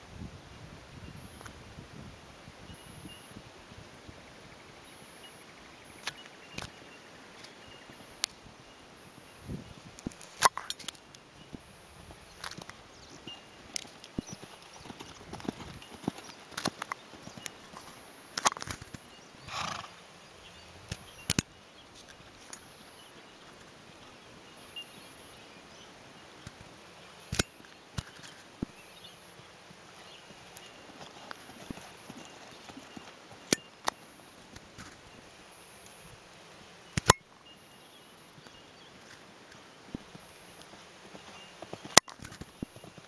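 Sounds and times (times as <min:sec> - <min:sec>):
horse hoofbeats on sand: 0:12.6 - 0:18.0, 0:29.3 - 0:33.5, 0:39.9 - 0:43.0.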